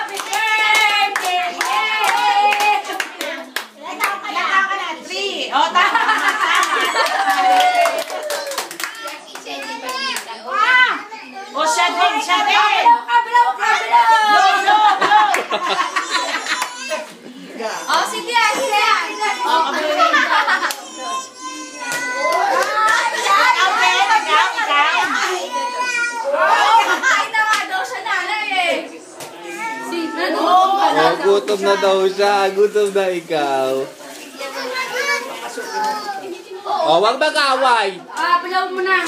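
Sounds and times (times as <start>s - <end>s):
children talking and calling out: 0.0s - 32.8s, 33.8s - 37.0s
young children calling out: 20.7s - 23.9s.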